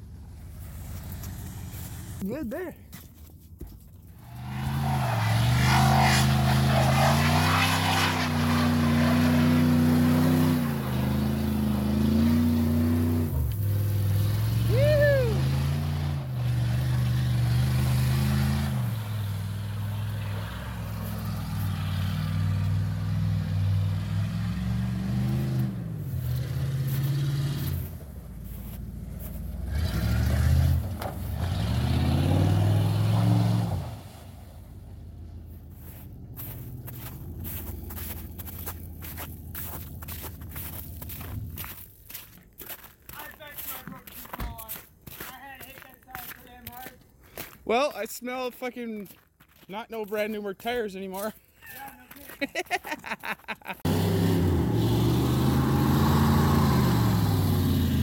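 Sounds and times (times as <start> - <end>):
tires spinning in snow: 0.0 - 2.2, 4.1 - 45.8, 51.7 - 58.0
pickup engine revving: 4.2 - 34.3, 53.8 - 58.0.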